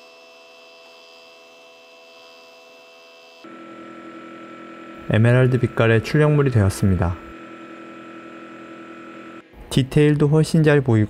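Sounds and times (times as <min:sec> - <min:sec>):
printer humming with fixed tones: 0:00.0 - 0:09.8.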